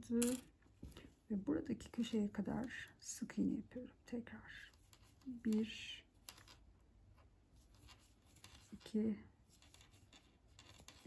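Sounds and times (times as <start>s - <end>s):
crochet hook scratching yarn: 4.4s - 11.0s.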